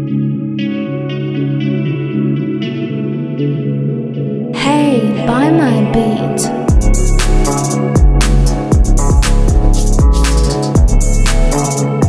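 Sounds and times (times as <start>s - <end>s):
plucked guitar melody: 0.0s - 12.0s.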